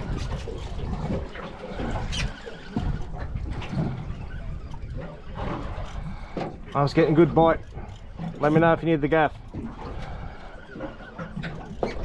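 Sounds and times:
water washing against boat hull: 0.0s - 12.0s
wind buffeting microphone: 0.0s - 12.0s.

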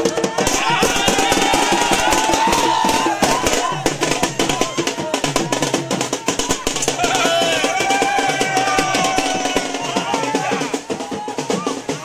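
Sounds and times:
crowd voices: 0.0s - 12.0s
fast drumming: 0.0s - 12.0s.

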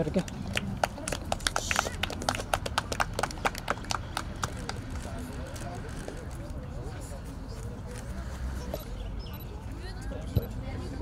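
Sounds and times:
faint voices: 0.0s - 11.0s
group hand clapping: 0.1s - 4.8s.

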